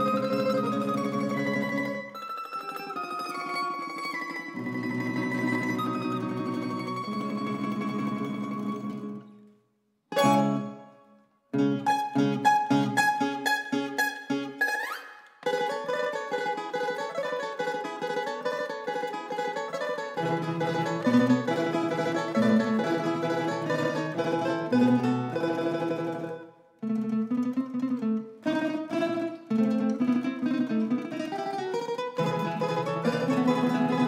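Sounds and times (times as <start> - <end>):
tambura ensemble playing folk music: 0.0 - 9.3, 10.1 - 11.0, 11.6 - 34.0.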